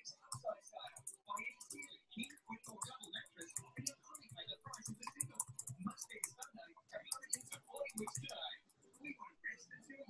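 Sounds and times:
keyboard typing clicks: 0.3s - 6.5s, 7.1s - 8.4s.

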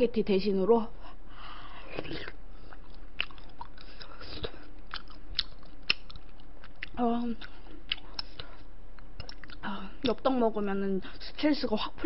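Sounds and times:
person chewing food: 1.9s - 9.7s.

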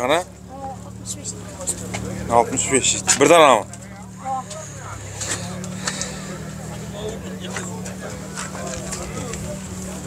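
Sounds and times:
low engine hum: 0.0s - 10.0s
faint background voices: 0.4s - 10.0s.

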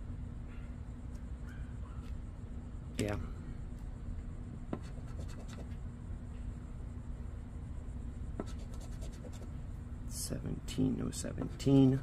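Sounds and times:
coin scratching lottery ticket: 4.8s - 5.7s, 8.4s - 9.5s.

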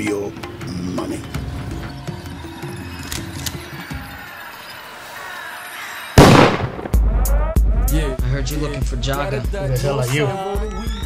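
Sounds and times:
loud bang: 6.2s - 7.3s
hip-hop beat with heavy bass: 6.9s - 11.0s.

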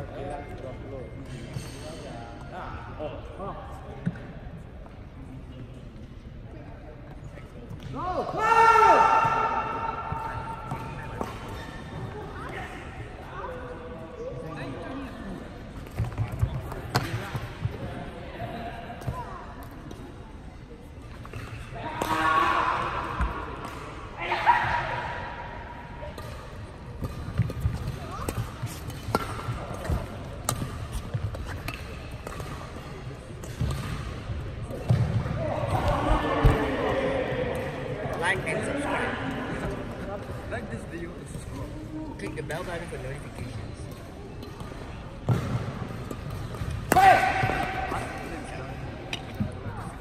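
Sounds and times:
racket hitting shuttlecock: 26.1s - 35.2s, 44.4s - 48.3s.

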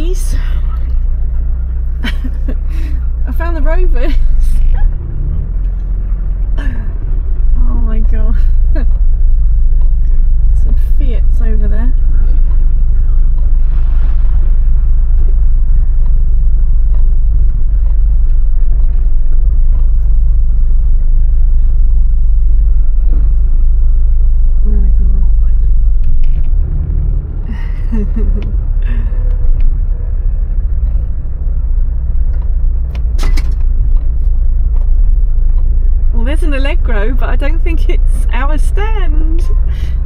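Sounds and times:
car engine low drone: 0.0s - 40.0s.

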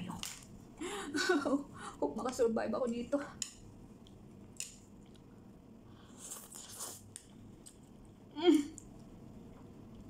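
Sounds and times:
chopsticks clicking against plate: 3.4s - 4.8s.

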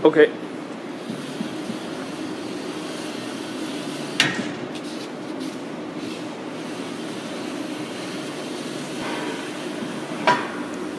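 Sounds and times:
steady hum: 0.0s - 10.9s.

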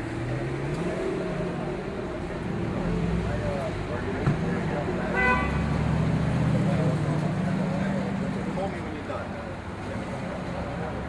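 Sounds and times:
car horn toot: 5.1s - 5.7s.

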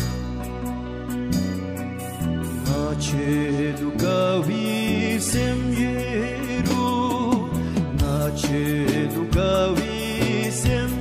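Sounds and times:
musical backing: 0.0s - 11.0s.

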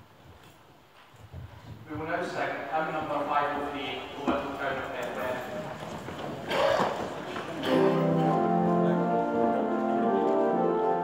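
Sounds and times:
church organ chord: 7.6s - 11.0s.

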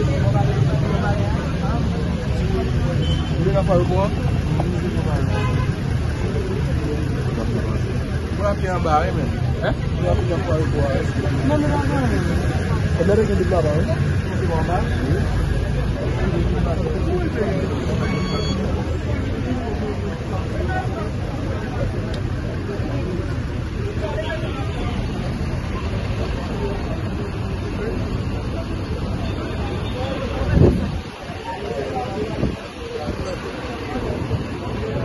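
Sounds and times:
people talking: 0.0s - 35.0s
vehicle engines rumbling: 0.0s - 35.0s.

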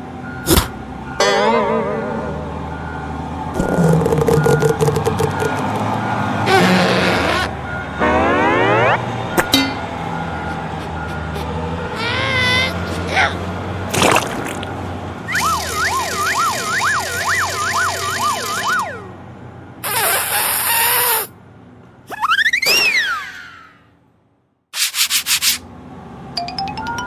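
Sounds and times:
rising tone: 1.2s - 11.3s
siren-like wavering wail: 1.2s - 11.3s, 15.3s - 19.3s
whistle rising and falling: 6.5s - 9.9s, 15.3s - 19.1s.

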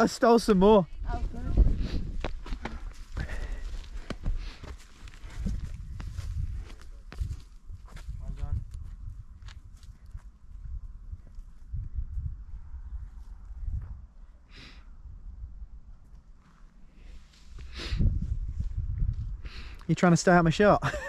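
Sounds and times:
footsteps on grassy path: 1.2s - 12.2s.

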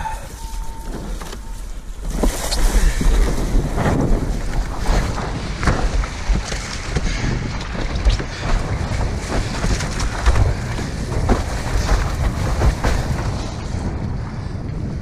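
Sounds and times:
wind buffeting microphone: 0.5s - 15.0s.

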